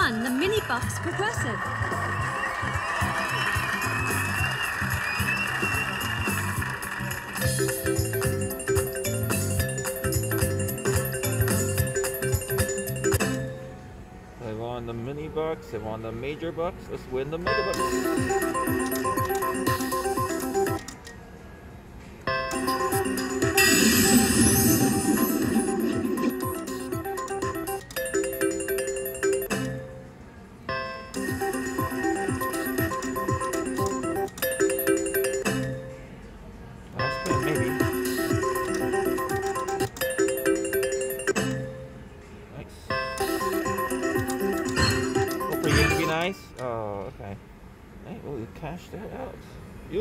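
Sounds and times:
slot machine spin melody and chimes: 0:00.0 - 0:13.7, 0:17.4 - 0:21.0, 0:22.3 - 0:30.0, 0:30.8 - 0:35.9, 0:37.0 - 0:42.0, 0:42.9 - 0:46.5.

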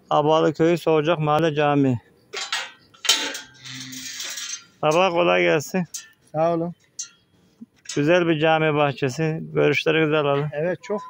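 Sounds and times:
metal gate clinking and scraping: 0:02.3 - 0:08.4.

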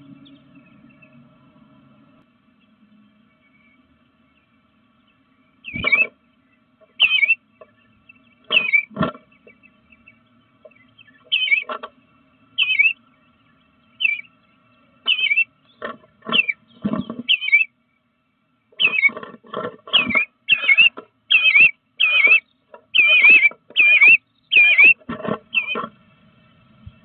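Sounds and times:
bluebird calling: 0:02.6 - 0:17.9, 0:18.7 - 0:26.0.

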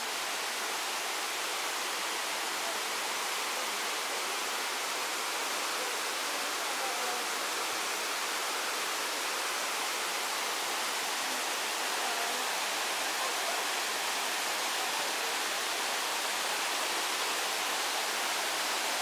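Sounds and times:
river water rushing over rocks: 0:00.0 - 0:19.0.

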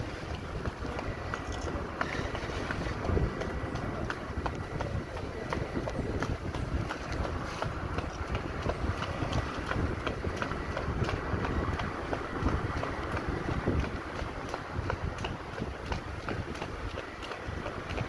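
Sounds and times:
bare feet slapping on asphalt: 0:00.0 - 0:18.0
wind rumble on microphone: 0:00.0 - 0:18.0.

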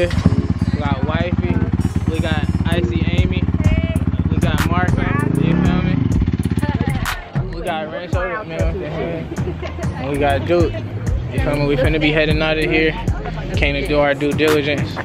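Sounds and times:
dirt bike engine running: 0:00.0 - 0:08.3.

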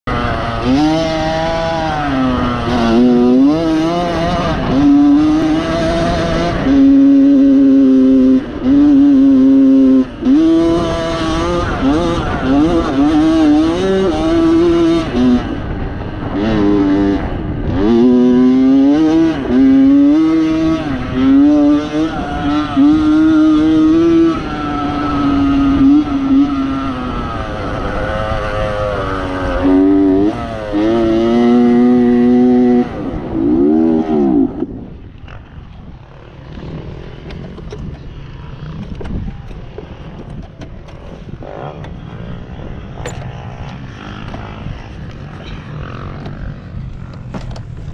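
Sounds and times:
dirt bike engine revving: 0:00.1 - 0:47.9
low rushing noise of coasting: 0:00.1 - 0:47.9.

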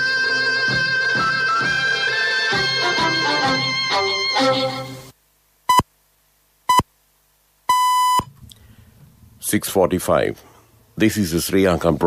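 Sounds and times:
faint low hum: 0:05.1 - 0:12.0
radio time signal beep: 0:07.7 - 0:08.3.

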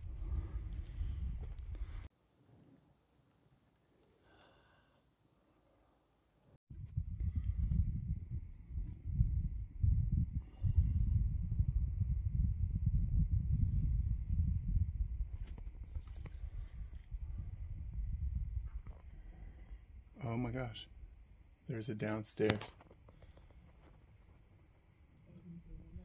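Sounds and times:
wind buffeting microphone: 0:00.0 - 0:02.1, 0:06.7 - 0:21.3.

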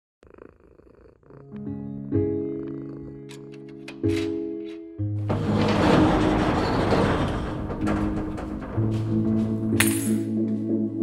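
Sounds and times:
cat purring: 0:00.2 - 0:03.7.

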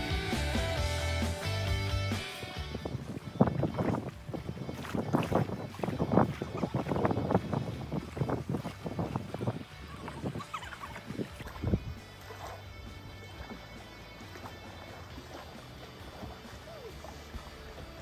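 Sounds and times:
wind gusting on microphone: 0:02.6 - 0:12.1.

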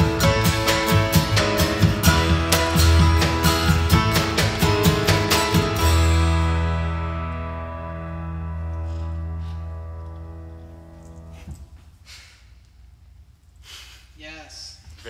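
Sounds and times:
acoustic band playing: 0:00.0 - 0:11.4.

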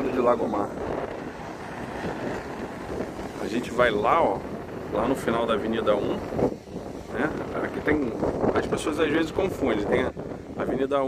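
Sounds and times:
surf breaking: 0:00.0 - 0:11.0
wind buffeting microphone: 0:00.0 - 0:11.0.

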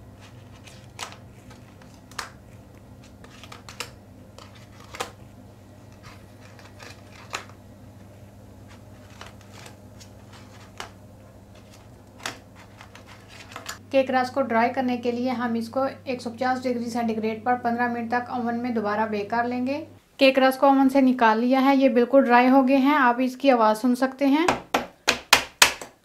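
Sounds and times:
faint low hum: 0:00.0 - 0:23.6.

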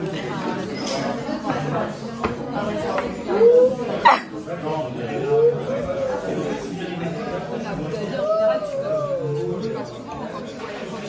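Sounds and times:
people talking at a table: 0:00.0 - 0:11.0
restaurant background chatter: 0:00.0 - 0:11.0.

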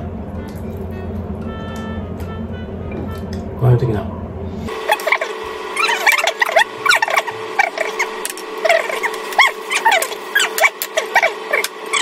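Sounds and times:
steady low hum: 0:00.0 - 0:12.0
high-pitched squeaking chirps: 0:04.8 - 0:12.0.

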